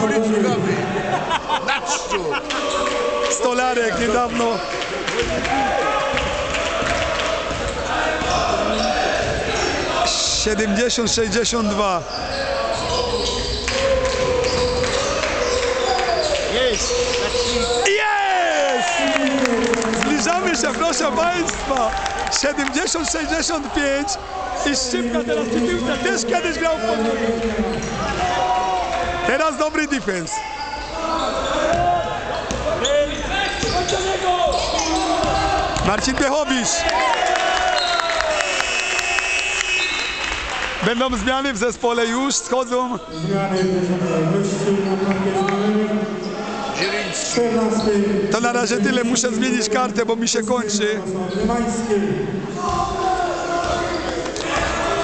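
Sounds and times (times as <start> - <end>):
voices echoing: 0.0 - 55.0
basketball bouncing on court: 6.1 - 9.6, 31.7 - 32.8, 53.6 - 54.0
shoe squeaks: 12.0 - 13.7, 30.4 - 35.3.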